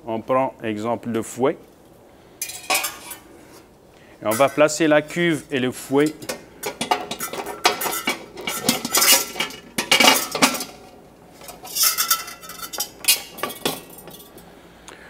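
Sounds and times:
metal bowl clanking and scraping: 2.4 - 3.3, 4.3 - 14.5.

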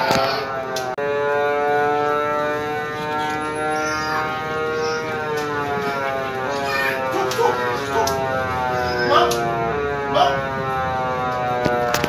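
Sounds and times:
carousel music chords: 1.5 - 10.9.

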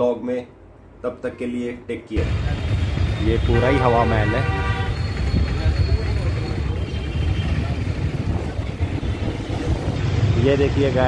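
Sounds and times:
street traffic rumble: 0.6 - 11.0.

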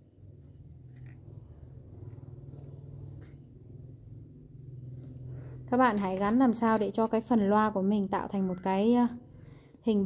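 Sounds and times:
faint high whine: 0.0 - 10.0
steady low hum: 0.0 - 10.0.

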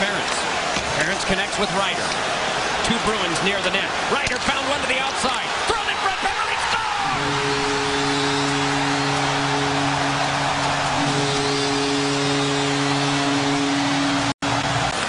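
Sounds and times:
crowd cheering: 0.0 - 15.0
goal horn blast: 7.0 - 15.0.

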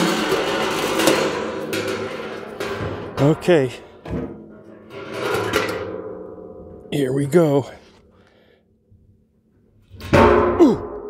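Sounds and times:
metal ring scraping on drum: 4.6 - 6.2.

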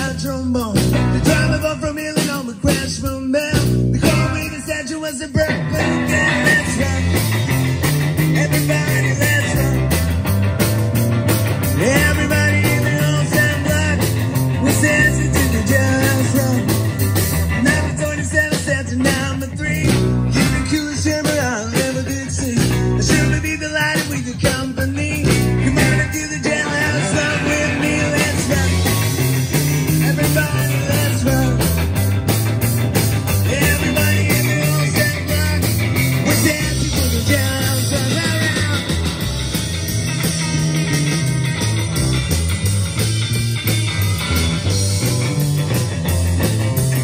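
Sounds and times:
drum kit: 0.0 - 47.0
electric bass: 0.0 - 47.0
electric guitar: 0.0 - 47.0.

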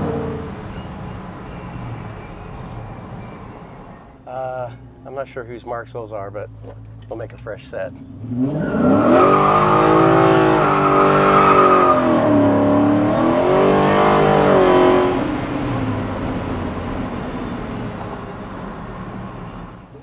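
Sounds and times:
car engine revving hard: 8.0 - 17.2.

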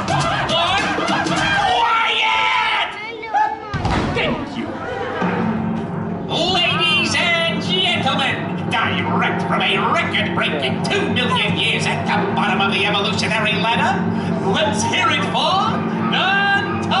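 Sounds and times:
stage show music: 0.0 - 1.8, 4.4 - 17.0.

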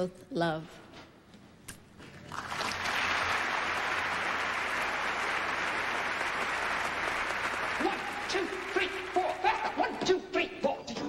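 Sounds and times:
audience applauding: 2.3 - 9.9.

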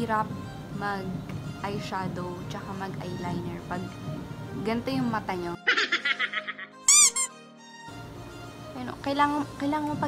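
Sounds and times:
faint music: 0.0 - 10.0
squeaky pitch glide: 6.9 - 7.4.

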